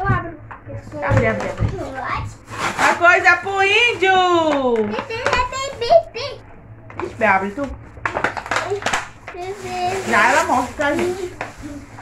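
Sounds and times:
child's voice: 0.0 - 2.4, 4.9 - 6.4, 8.6 - 10.2, 10.9 - 11.9
plastic packaging crackling: 8.0 - 12.0.

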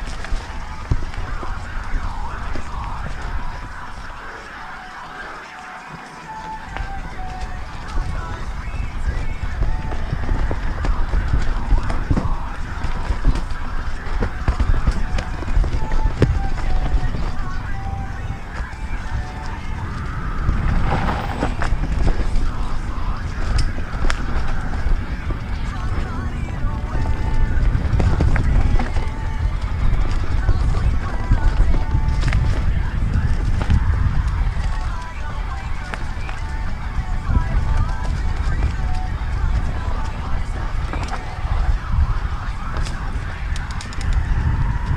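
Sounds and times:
bike rattling and knocking: 0.0 - 4.0, 6.8 - 44.9
wind rumble on microphone: 0.0 - 5.5, 6.2 - 44.9.

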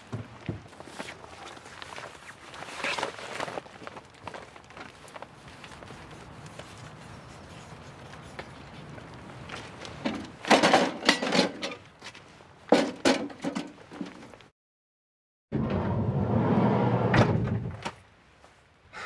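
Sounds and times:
van sliding door running: 15.6 - 17.8.

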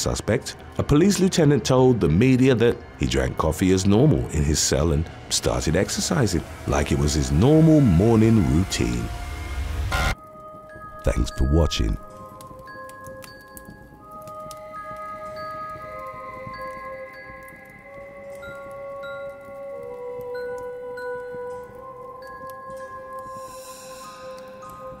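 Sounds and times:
ambient chime-like music: 3.6 - 25.0.

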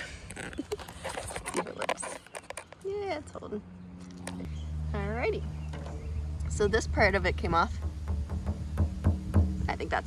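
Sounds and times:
camera knocking and scraping: 0.2 - 2.9.

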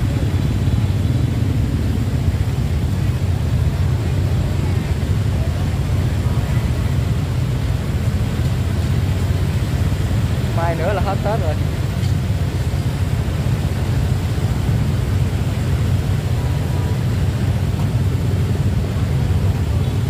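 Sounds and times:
faint voices: 0.0 - 9.4
motorbikes: 0.0 - 20.0
street traffic rumble: 0.0 - 20.0.

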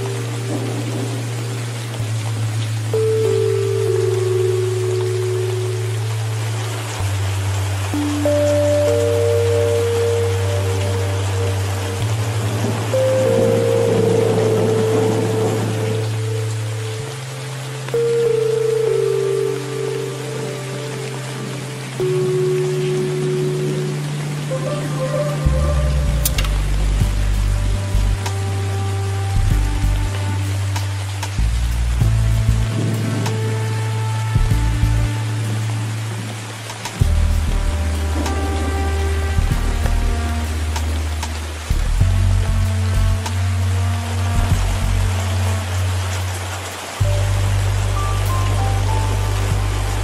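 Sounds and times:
rain hissing: 0.0 - 50.0
slow relaxation music: 0.0 - 50.0.

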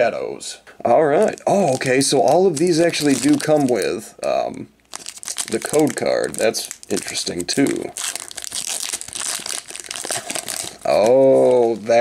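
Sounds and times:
foil wrapper crinkling: 1.2 - 12.0.

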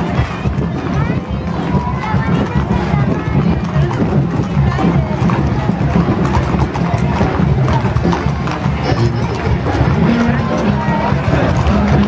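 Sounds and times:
crowd voices: 0.0 - 12.0
band music with loud bass: 3.2 - 12.0.

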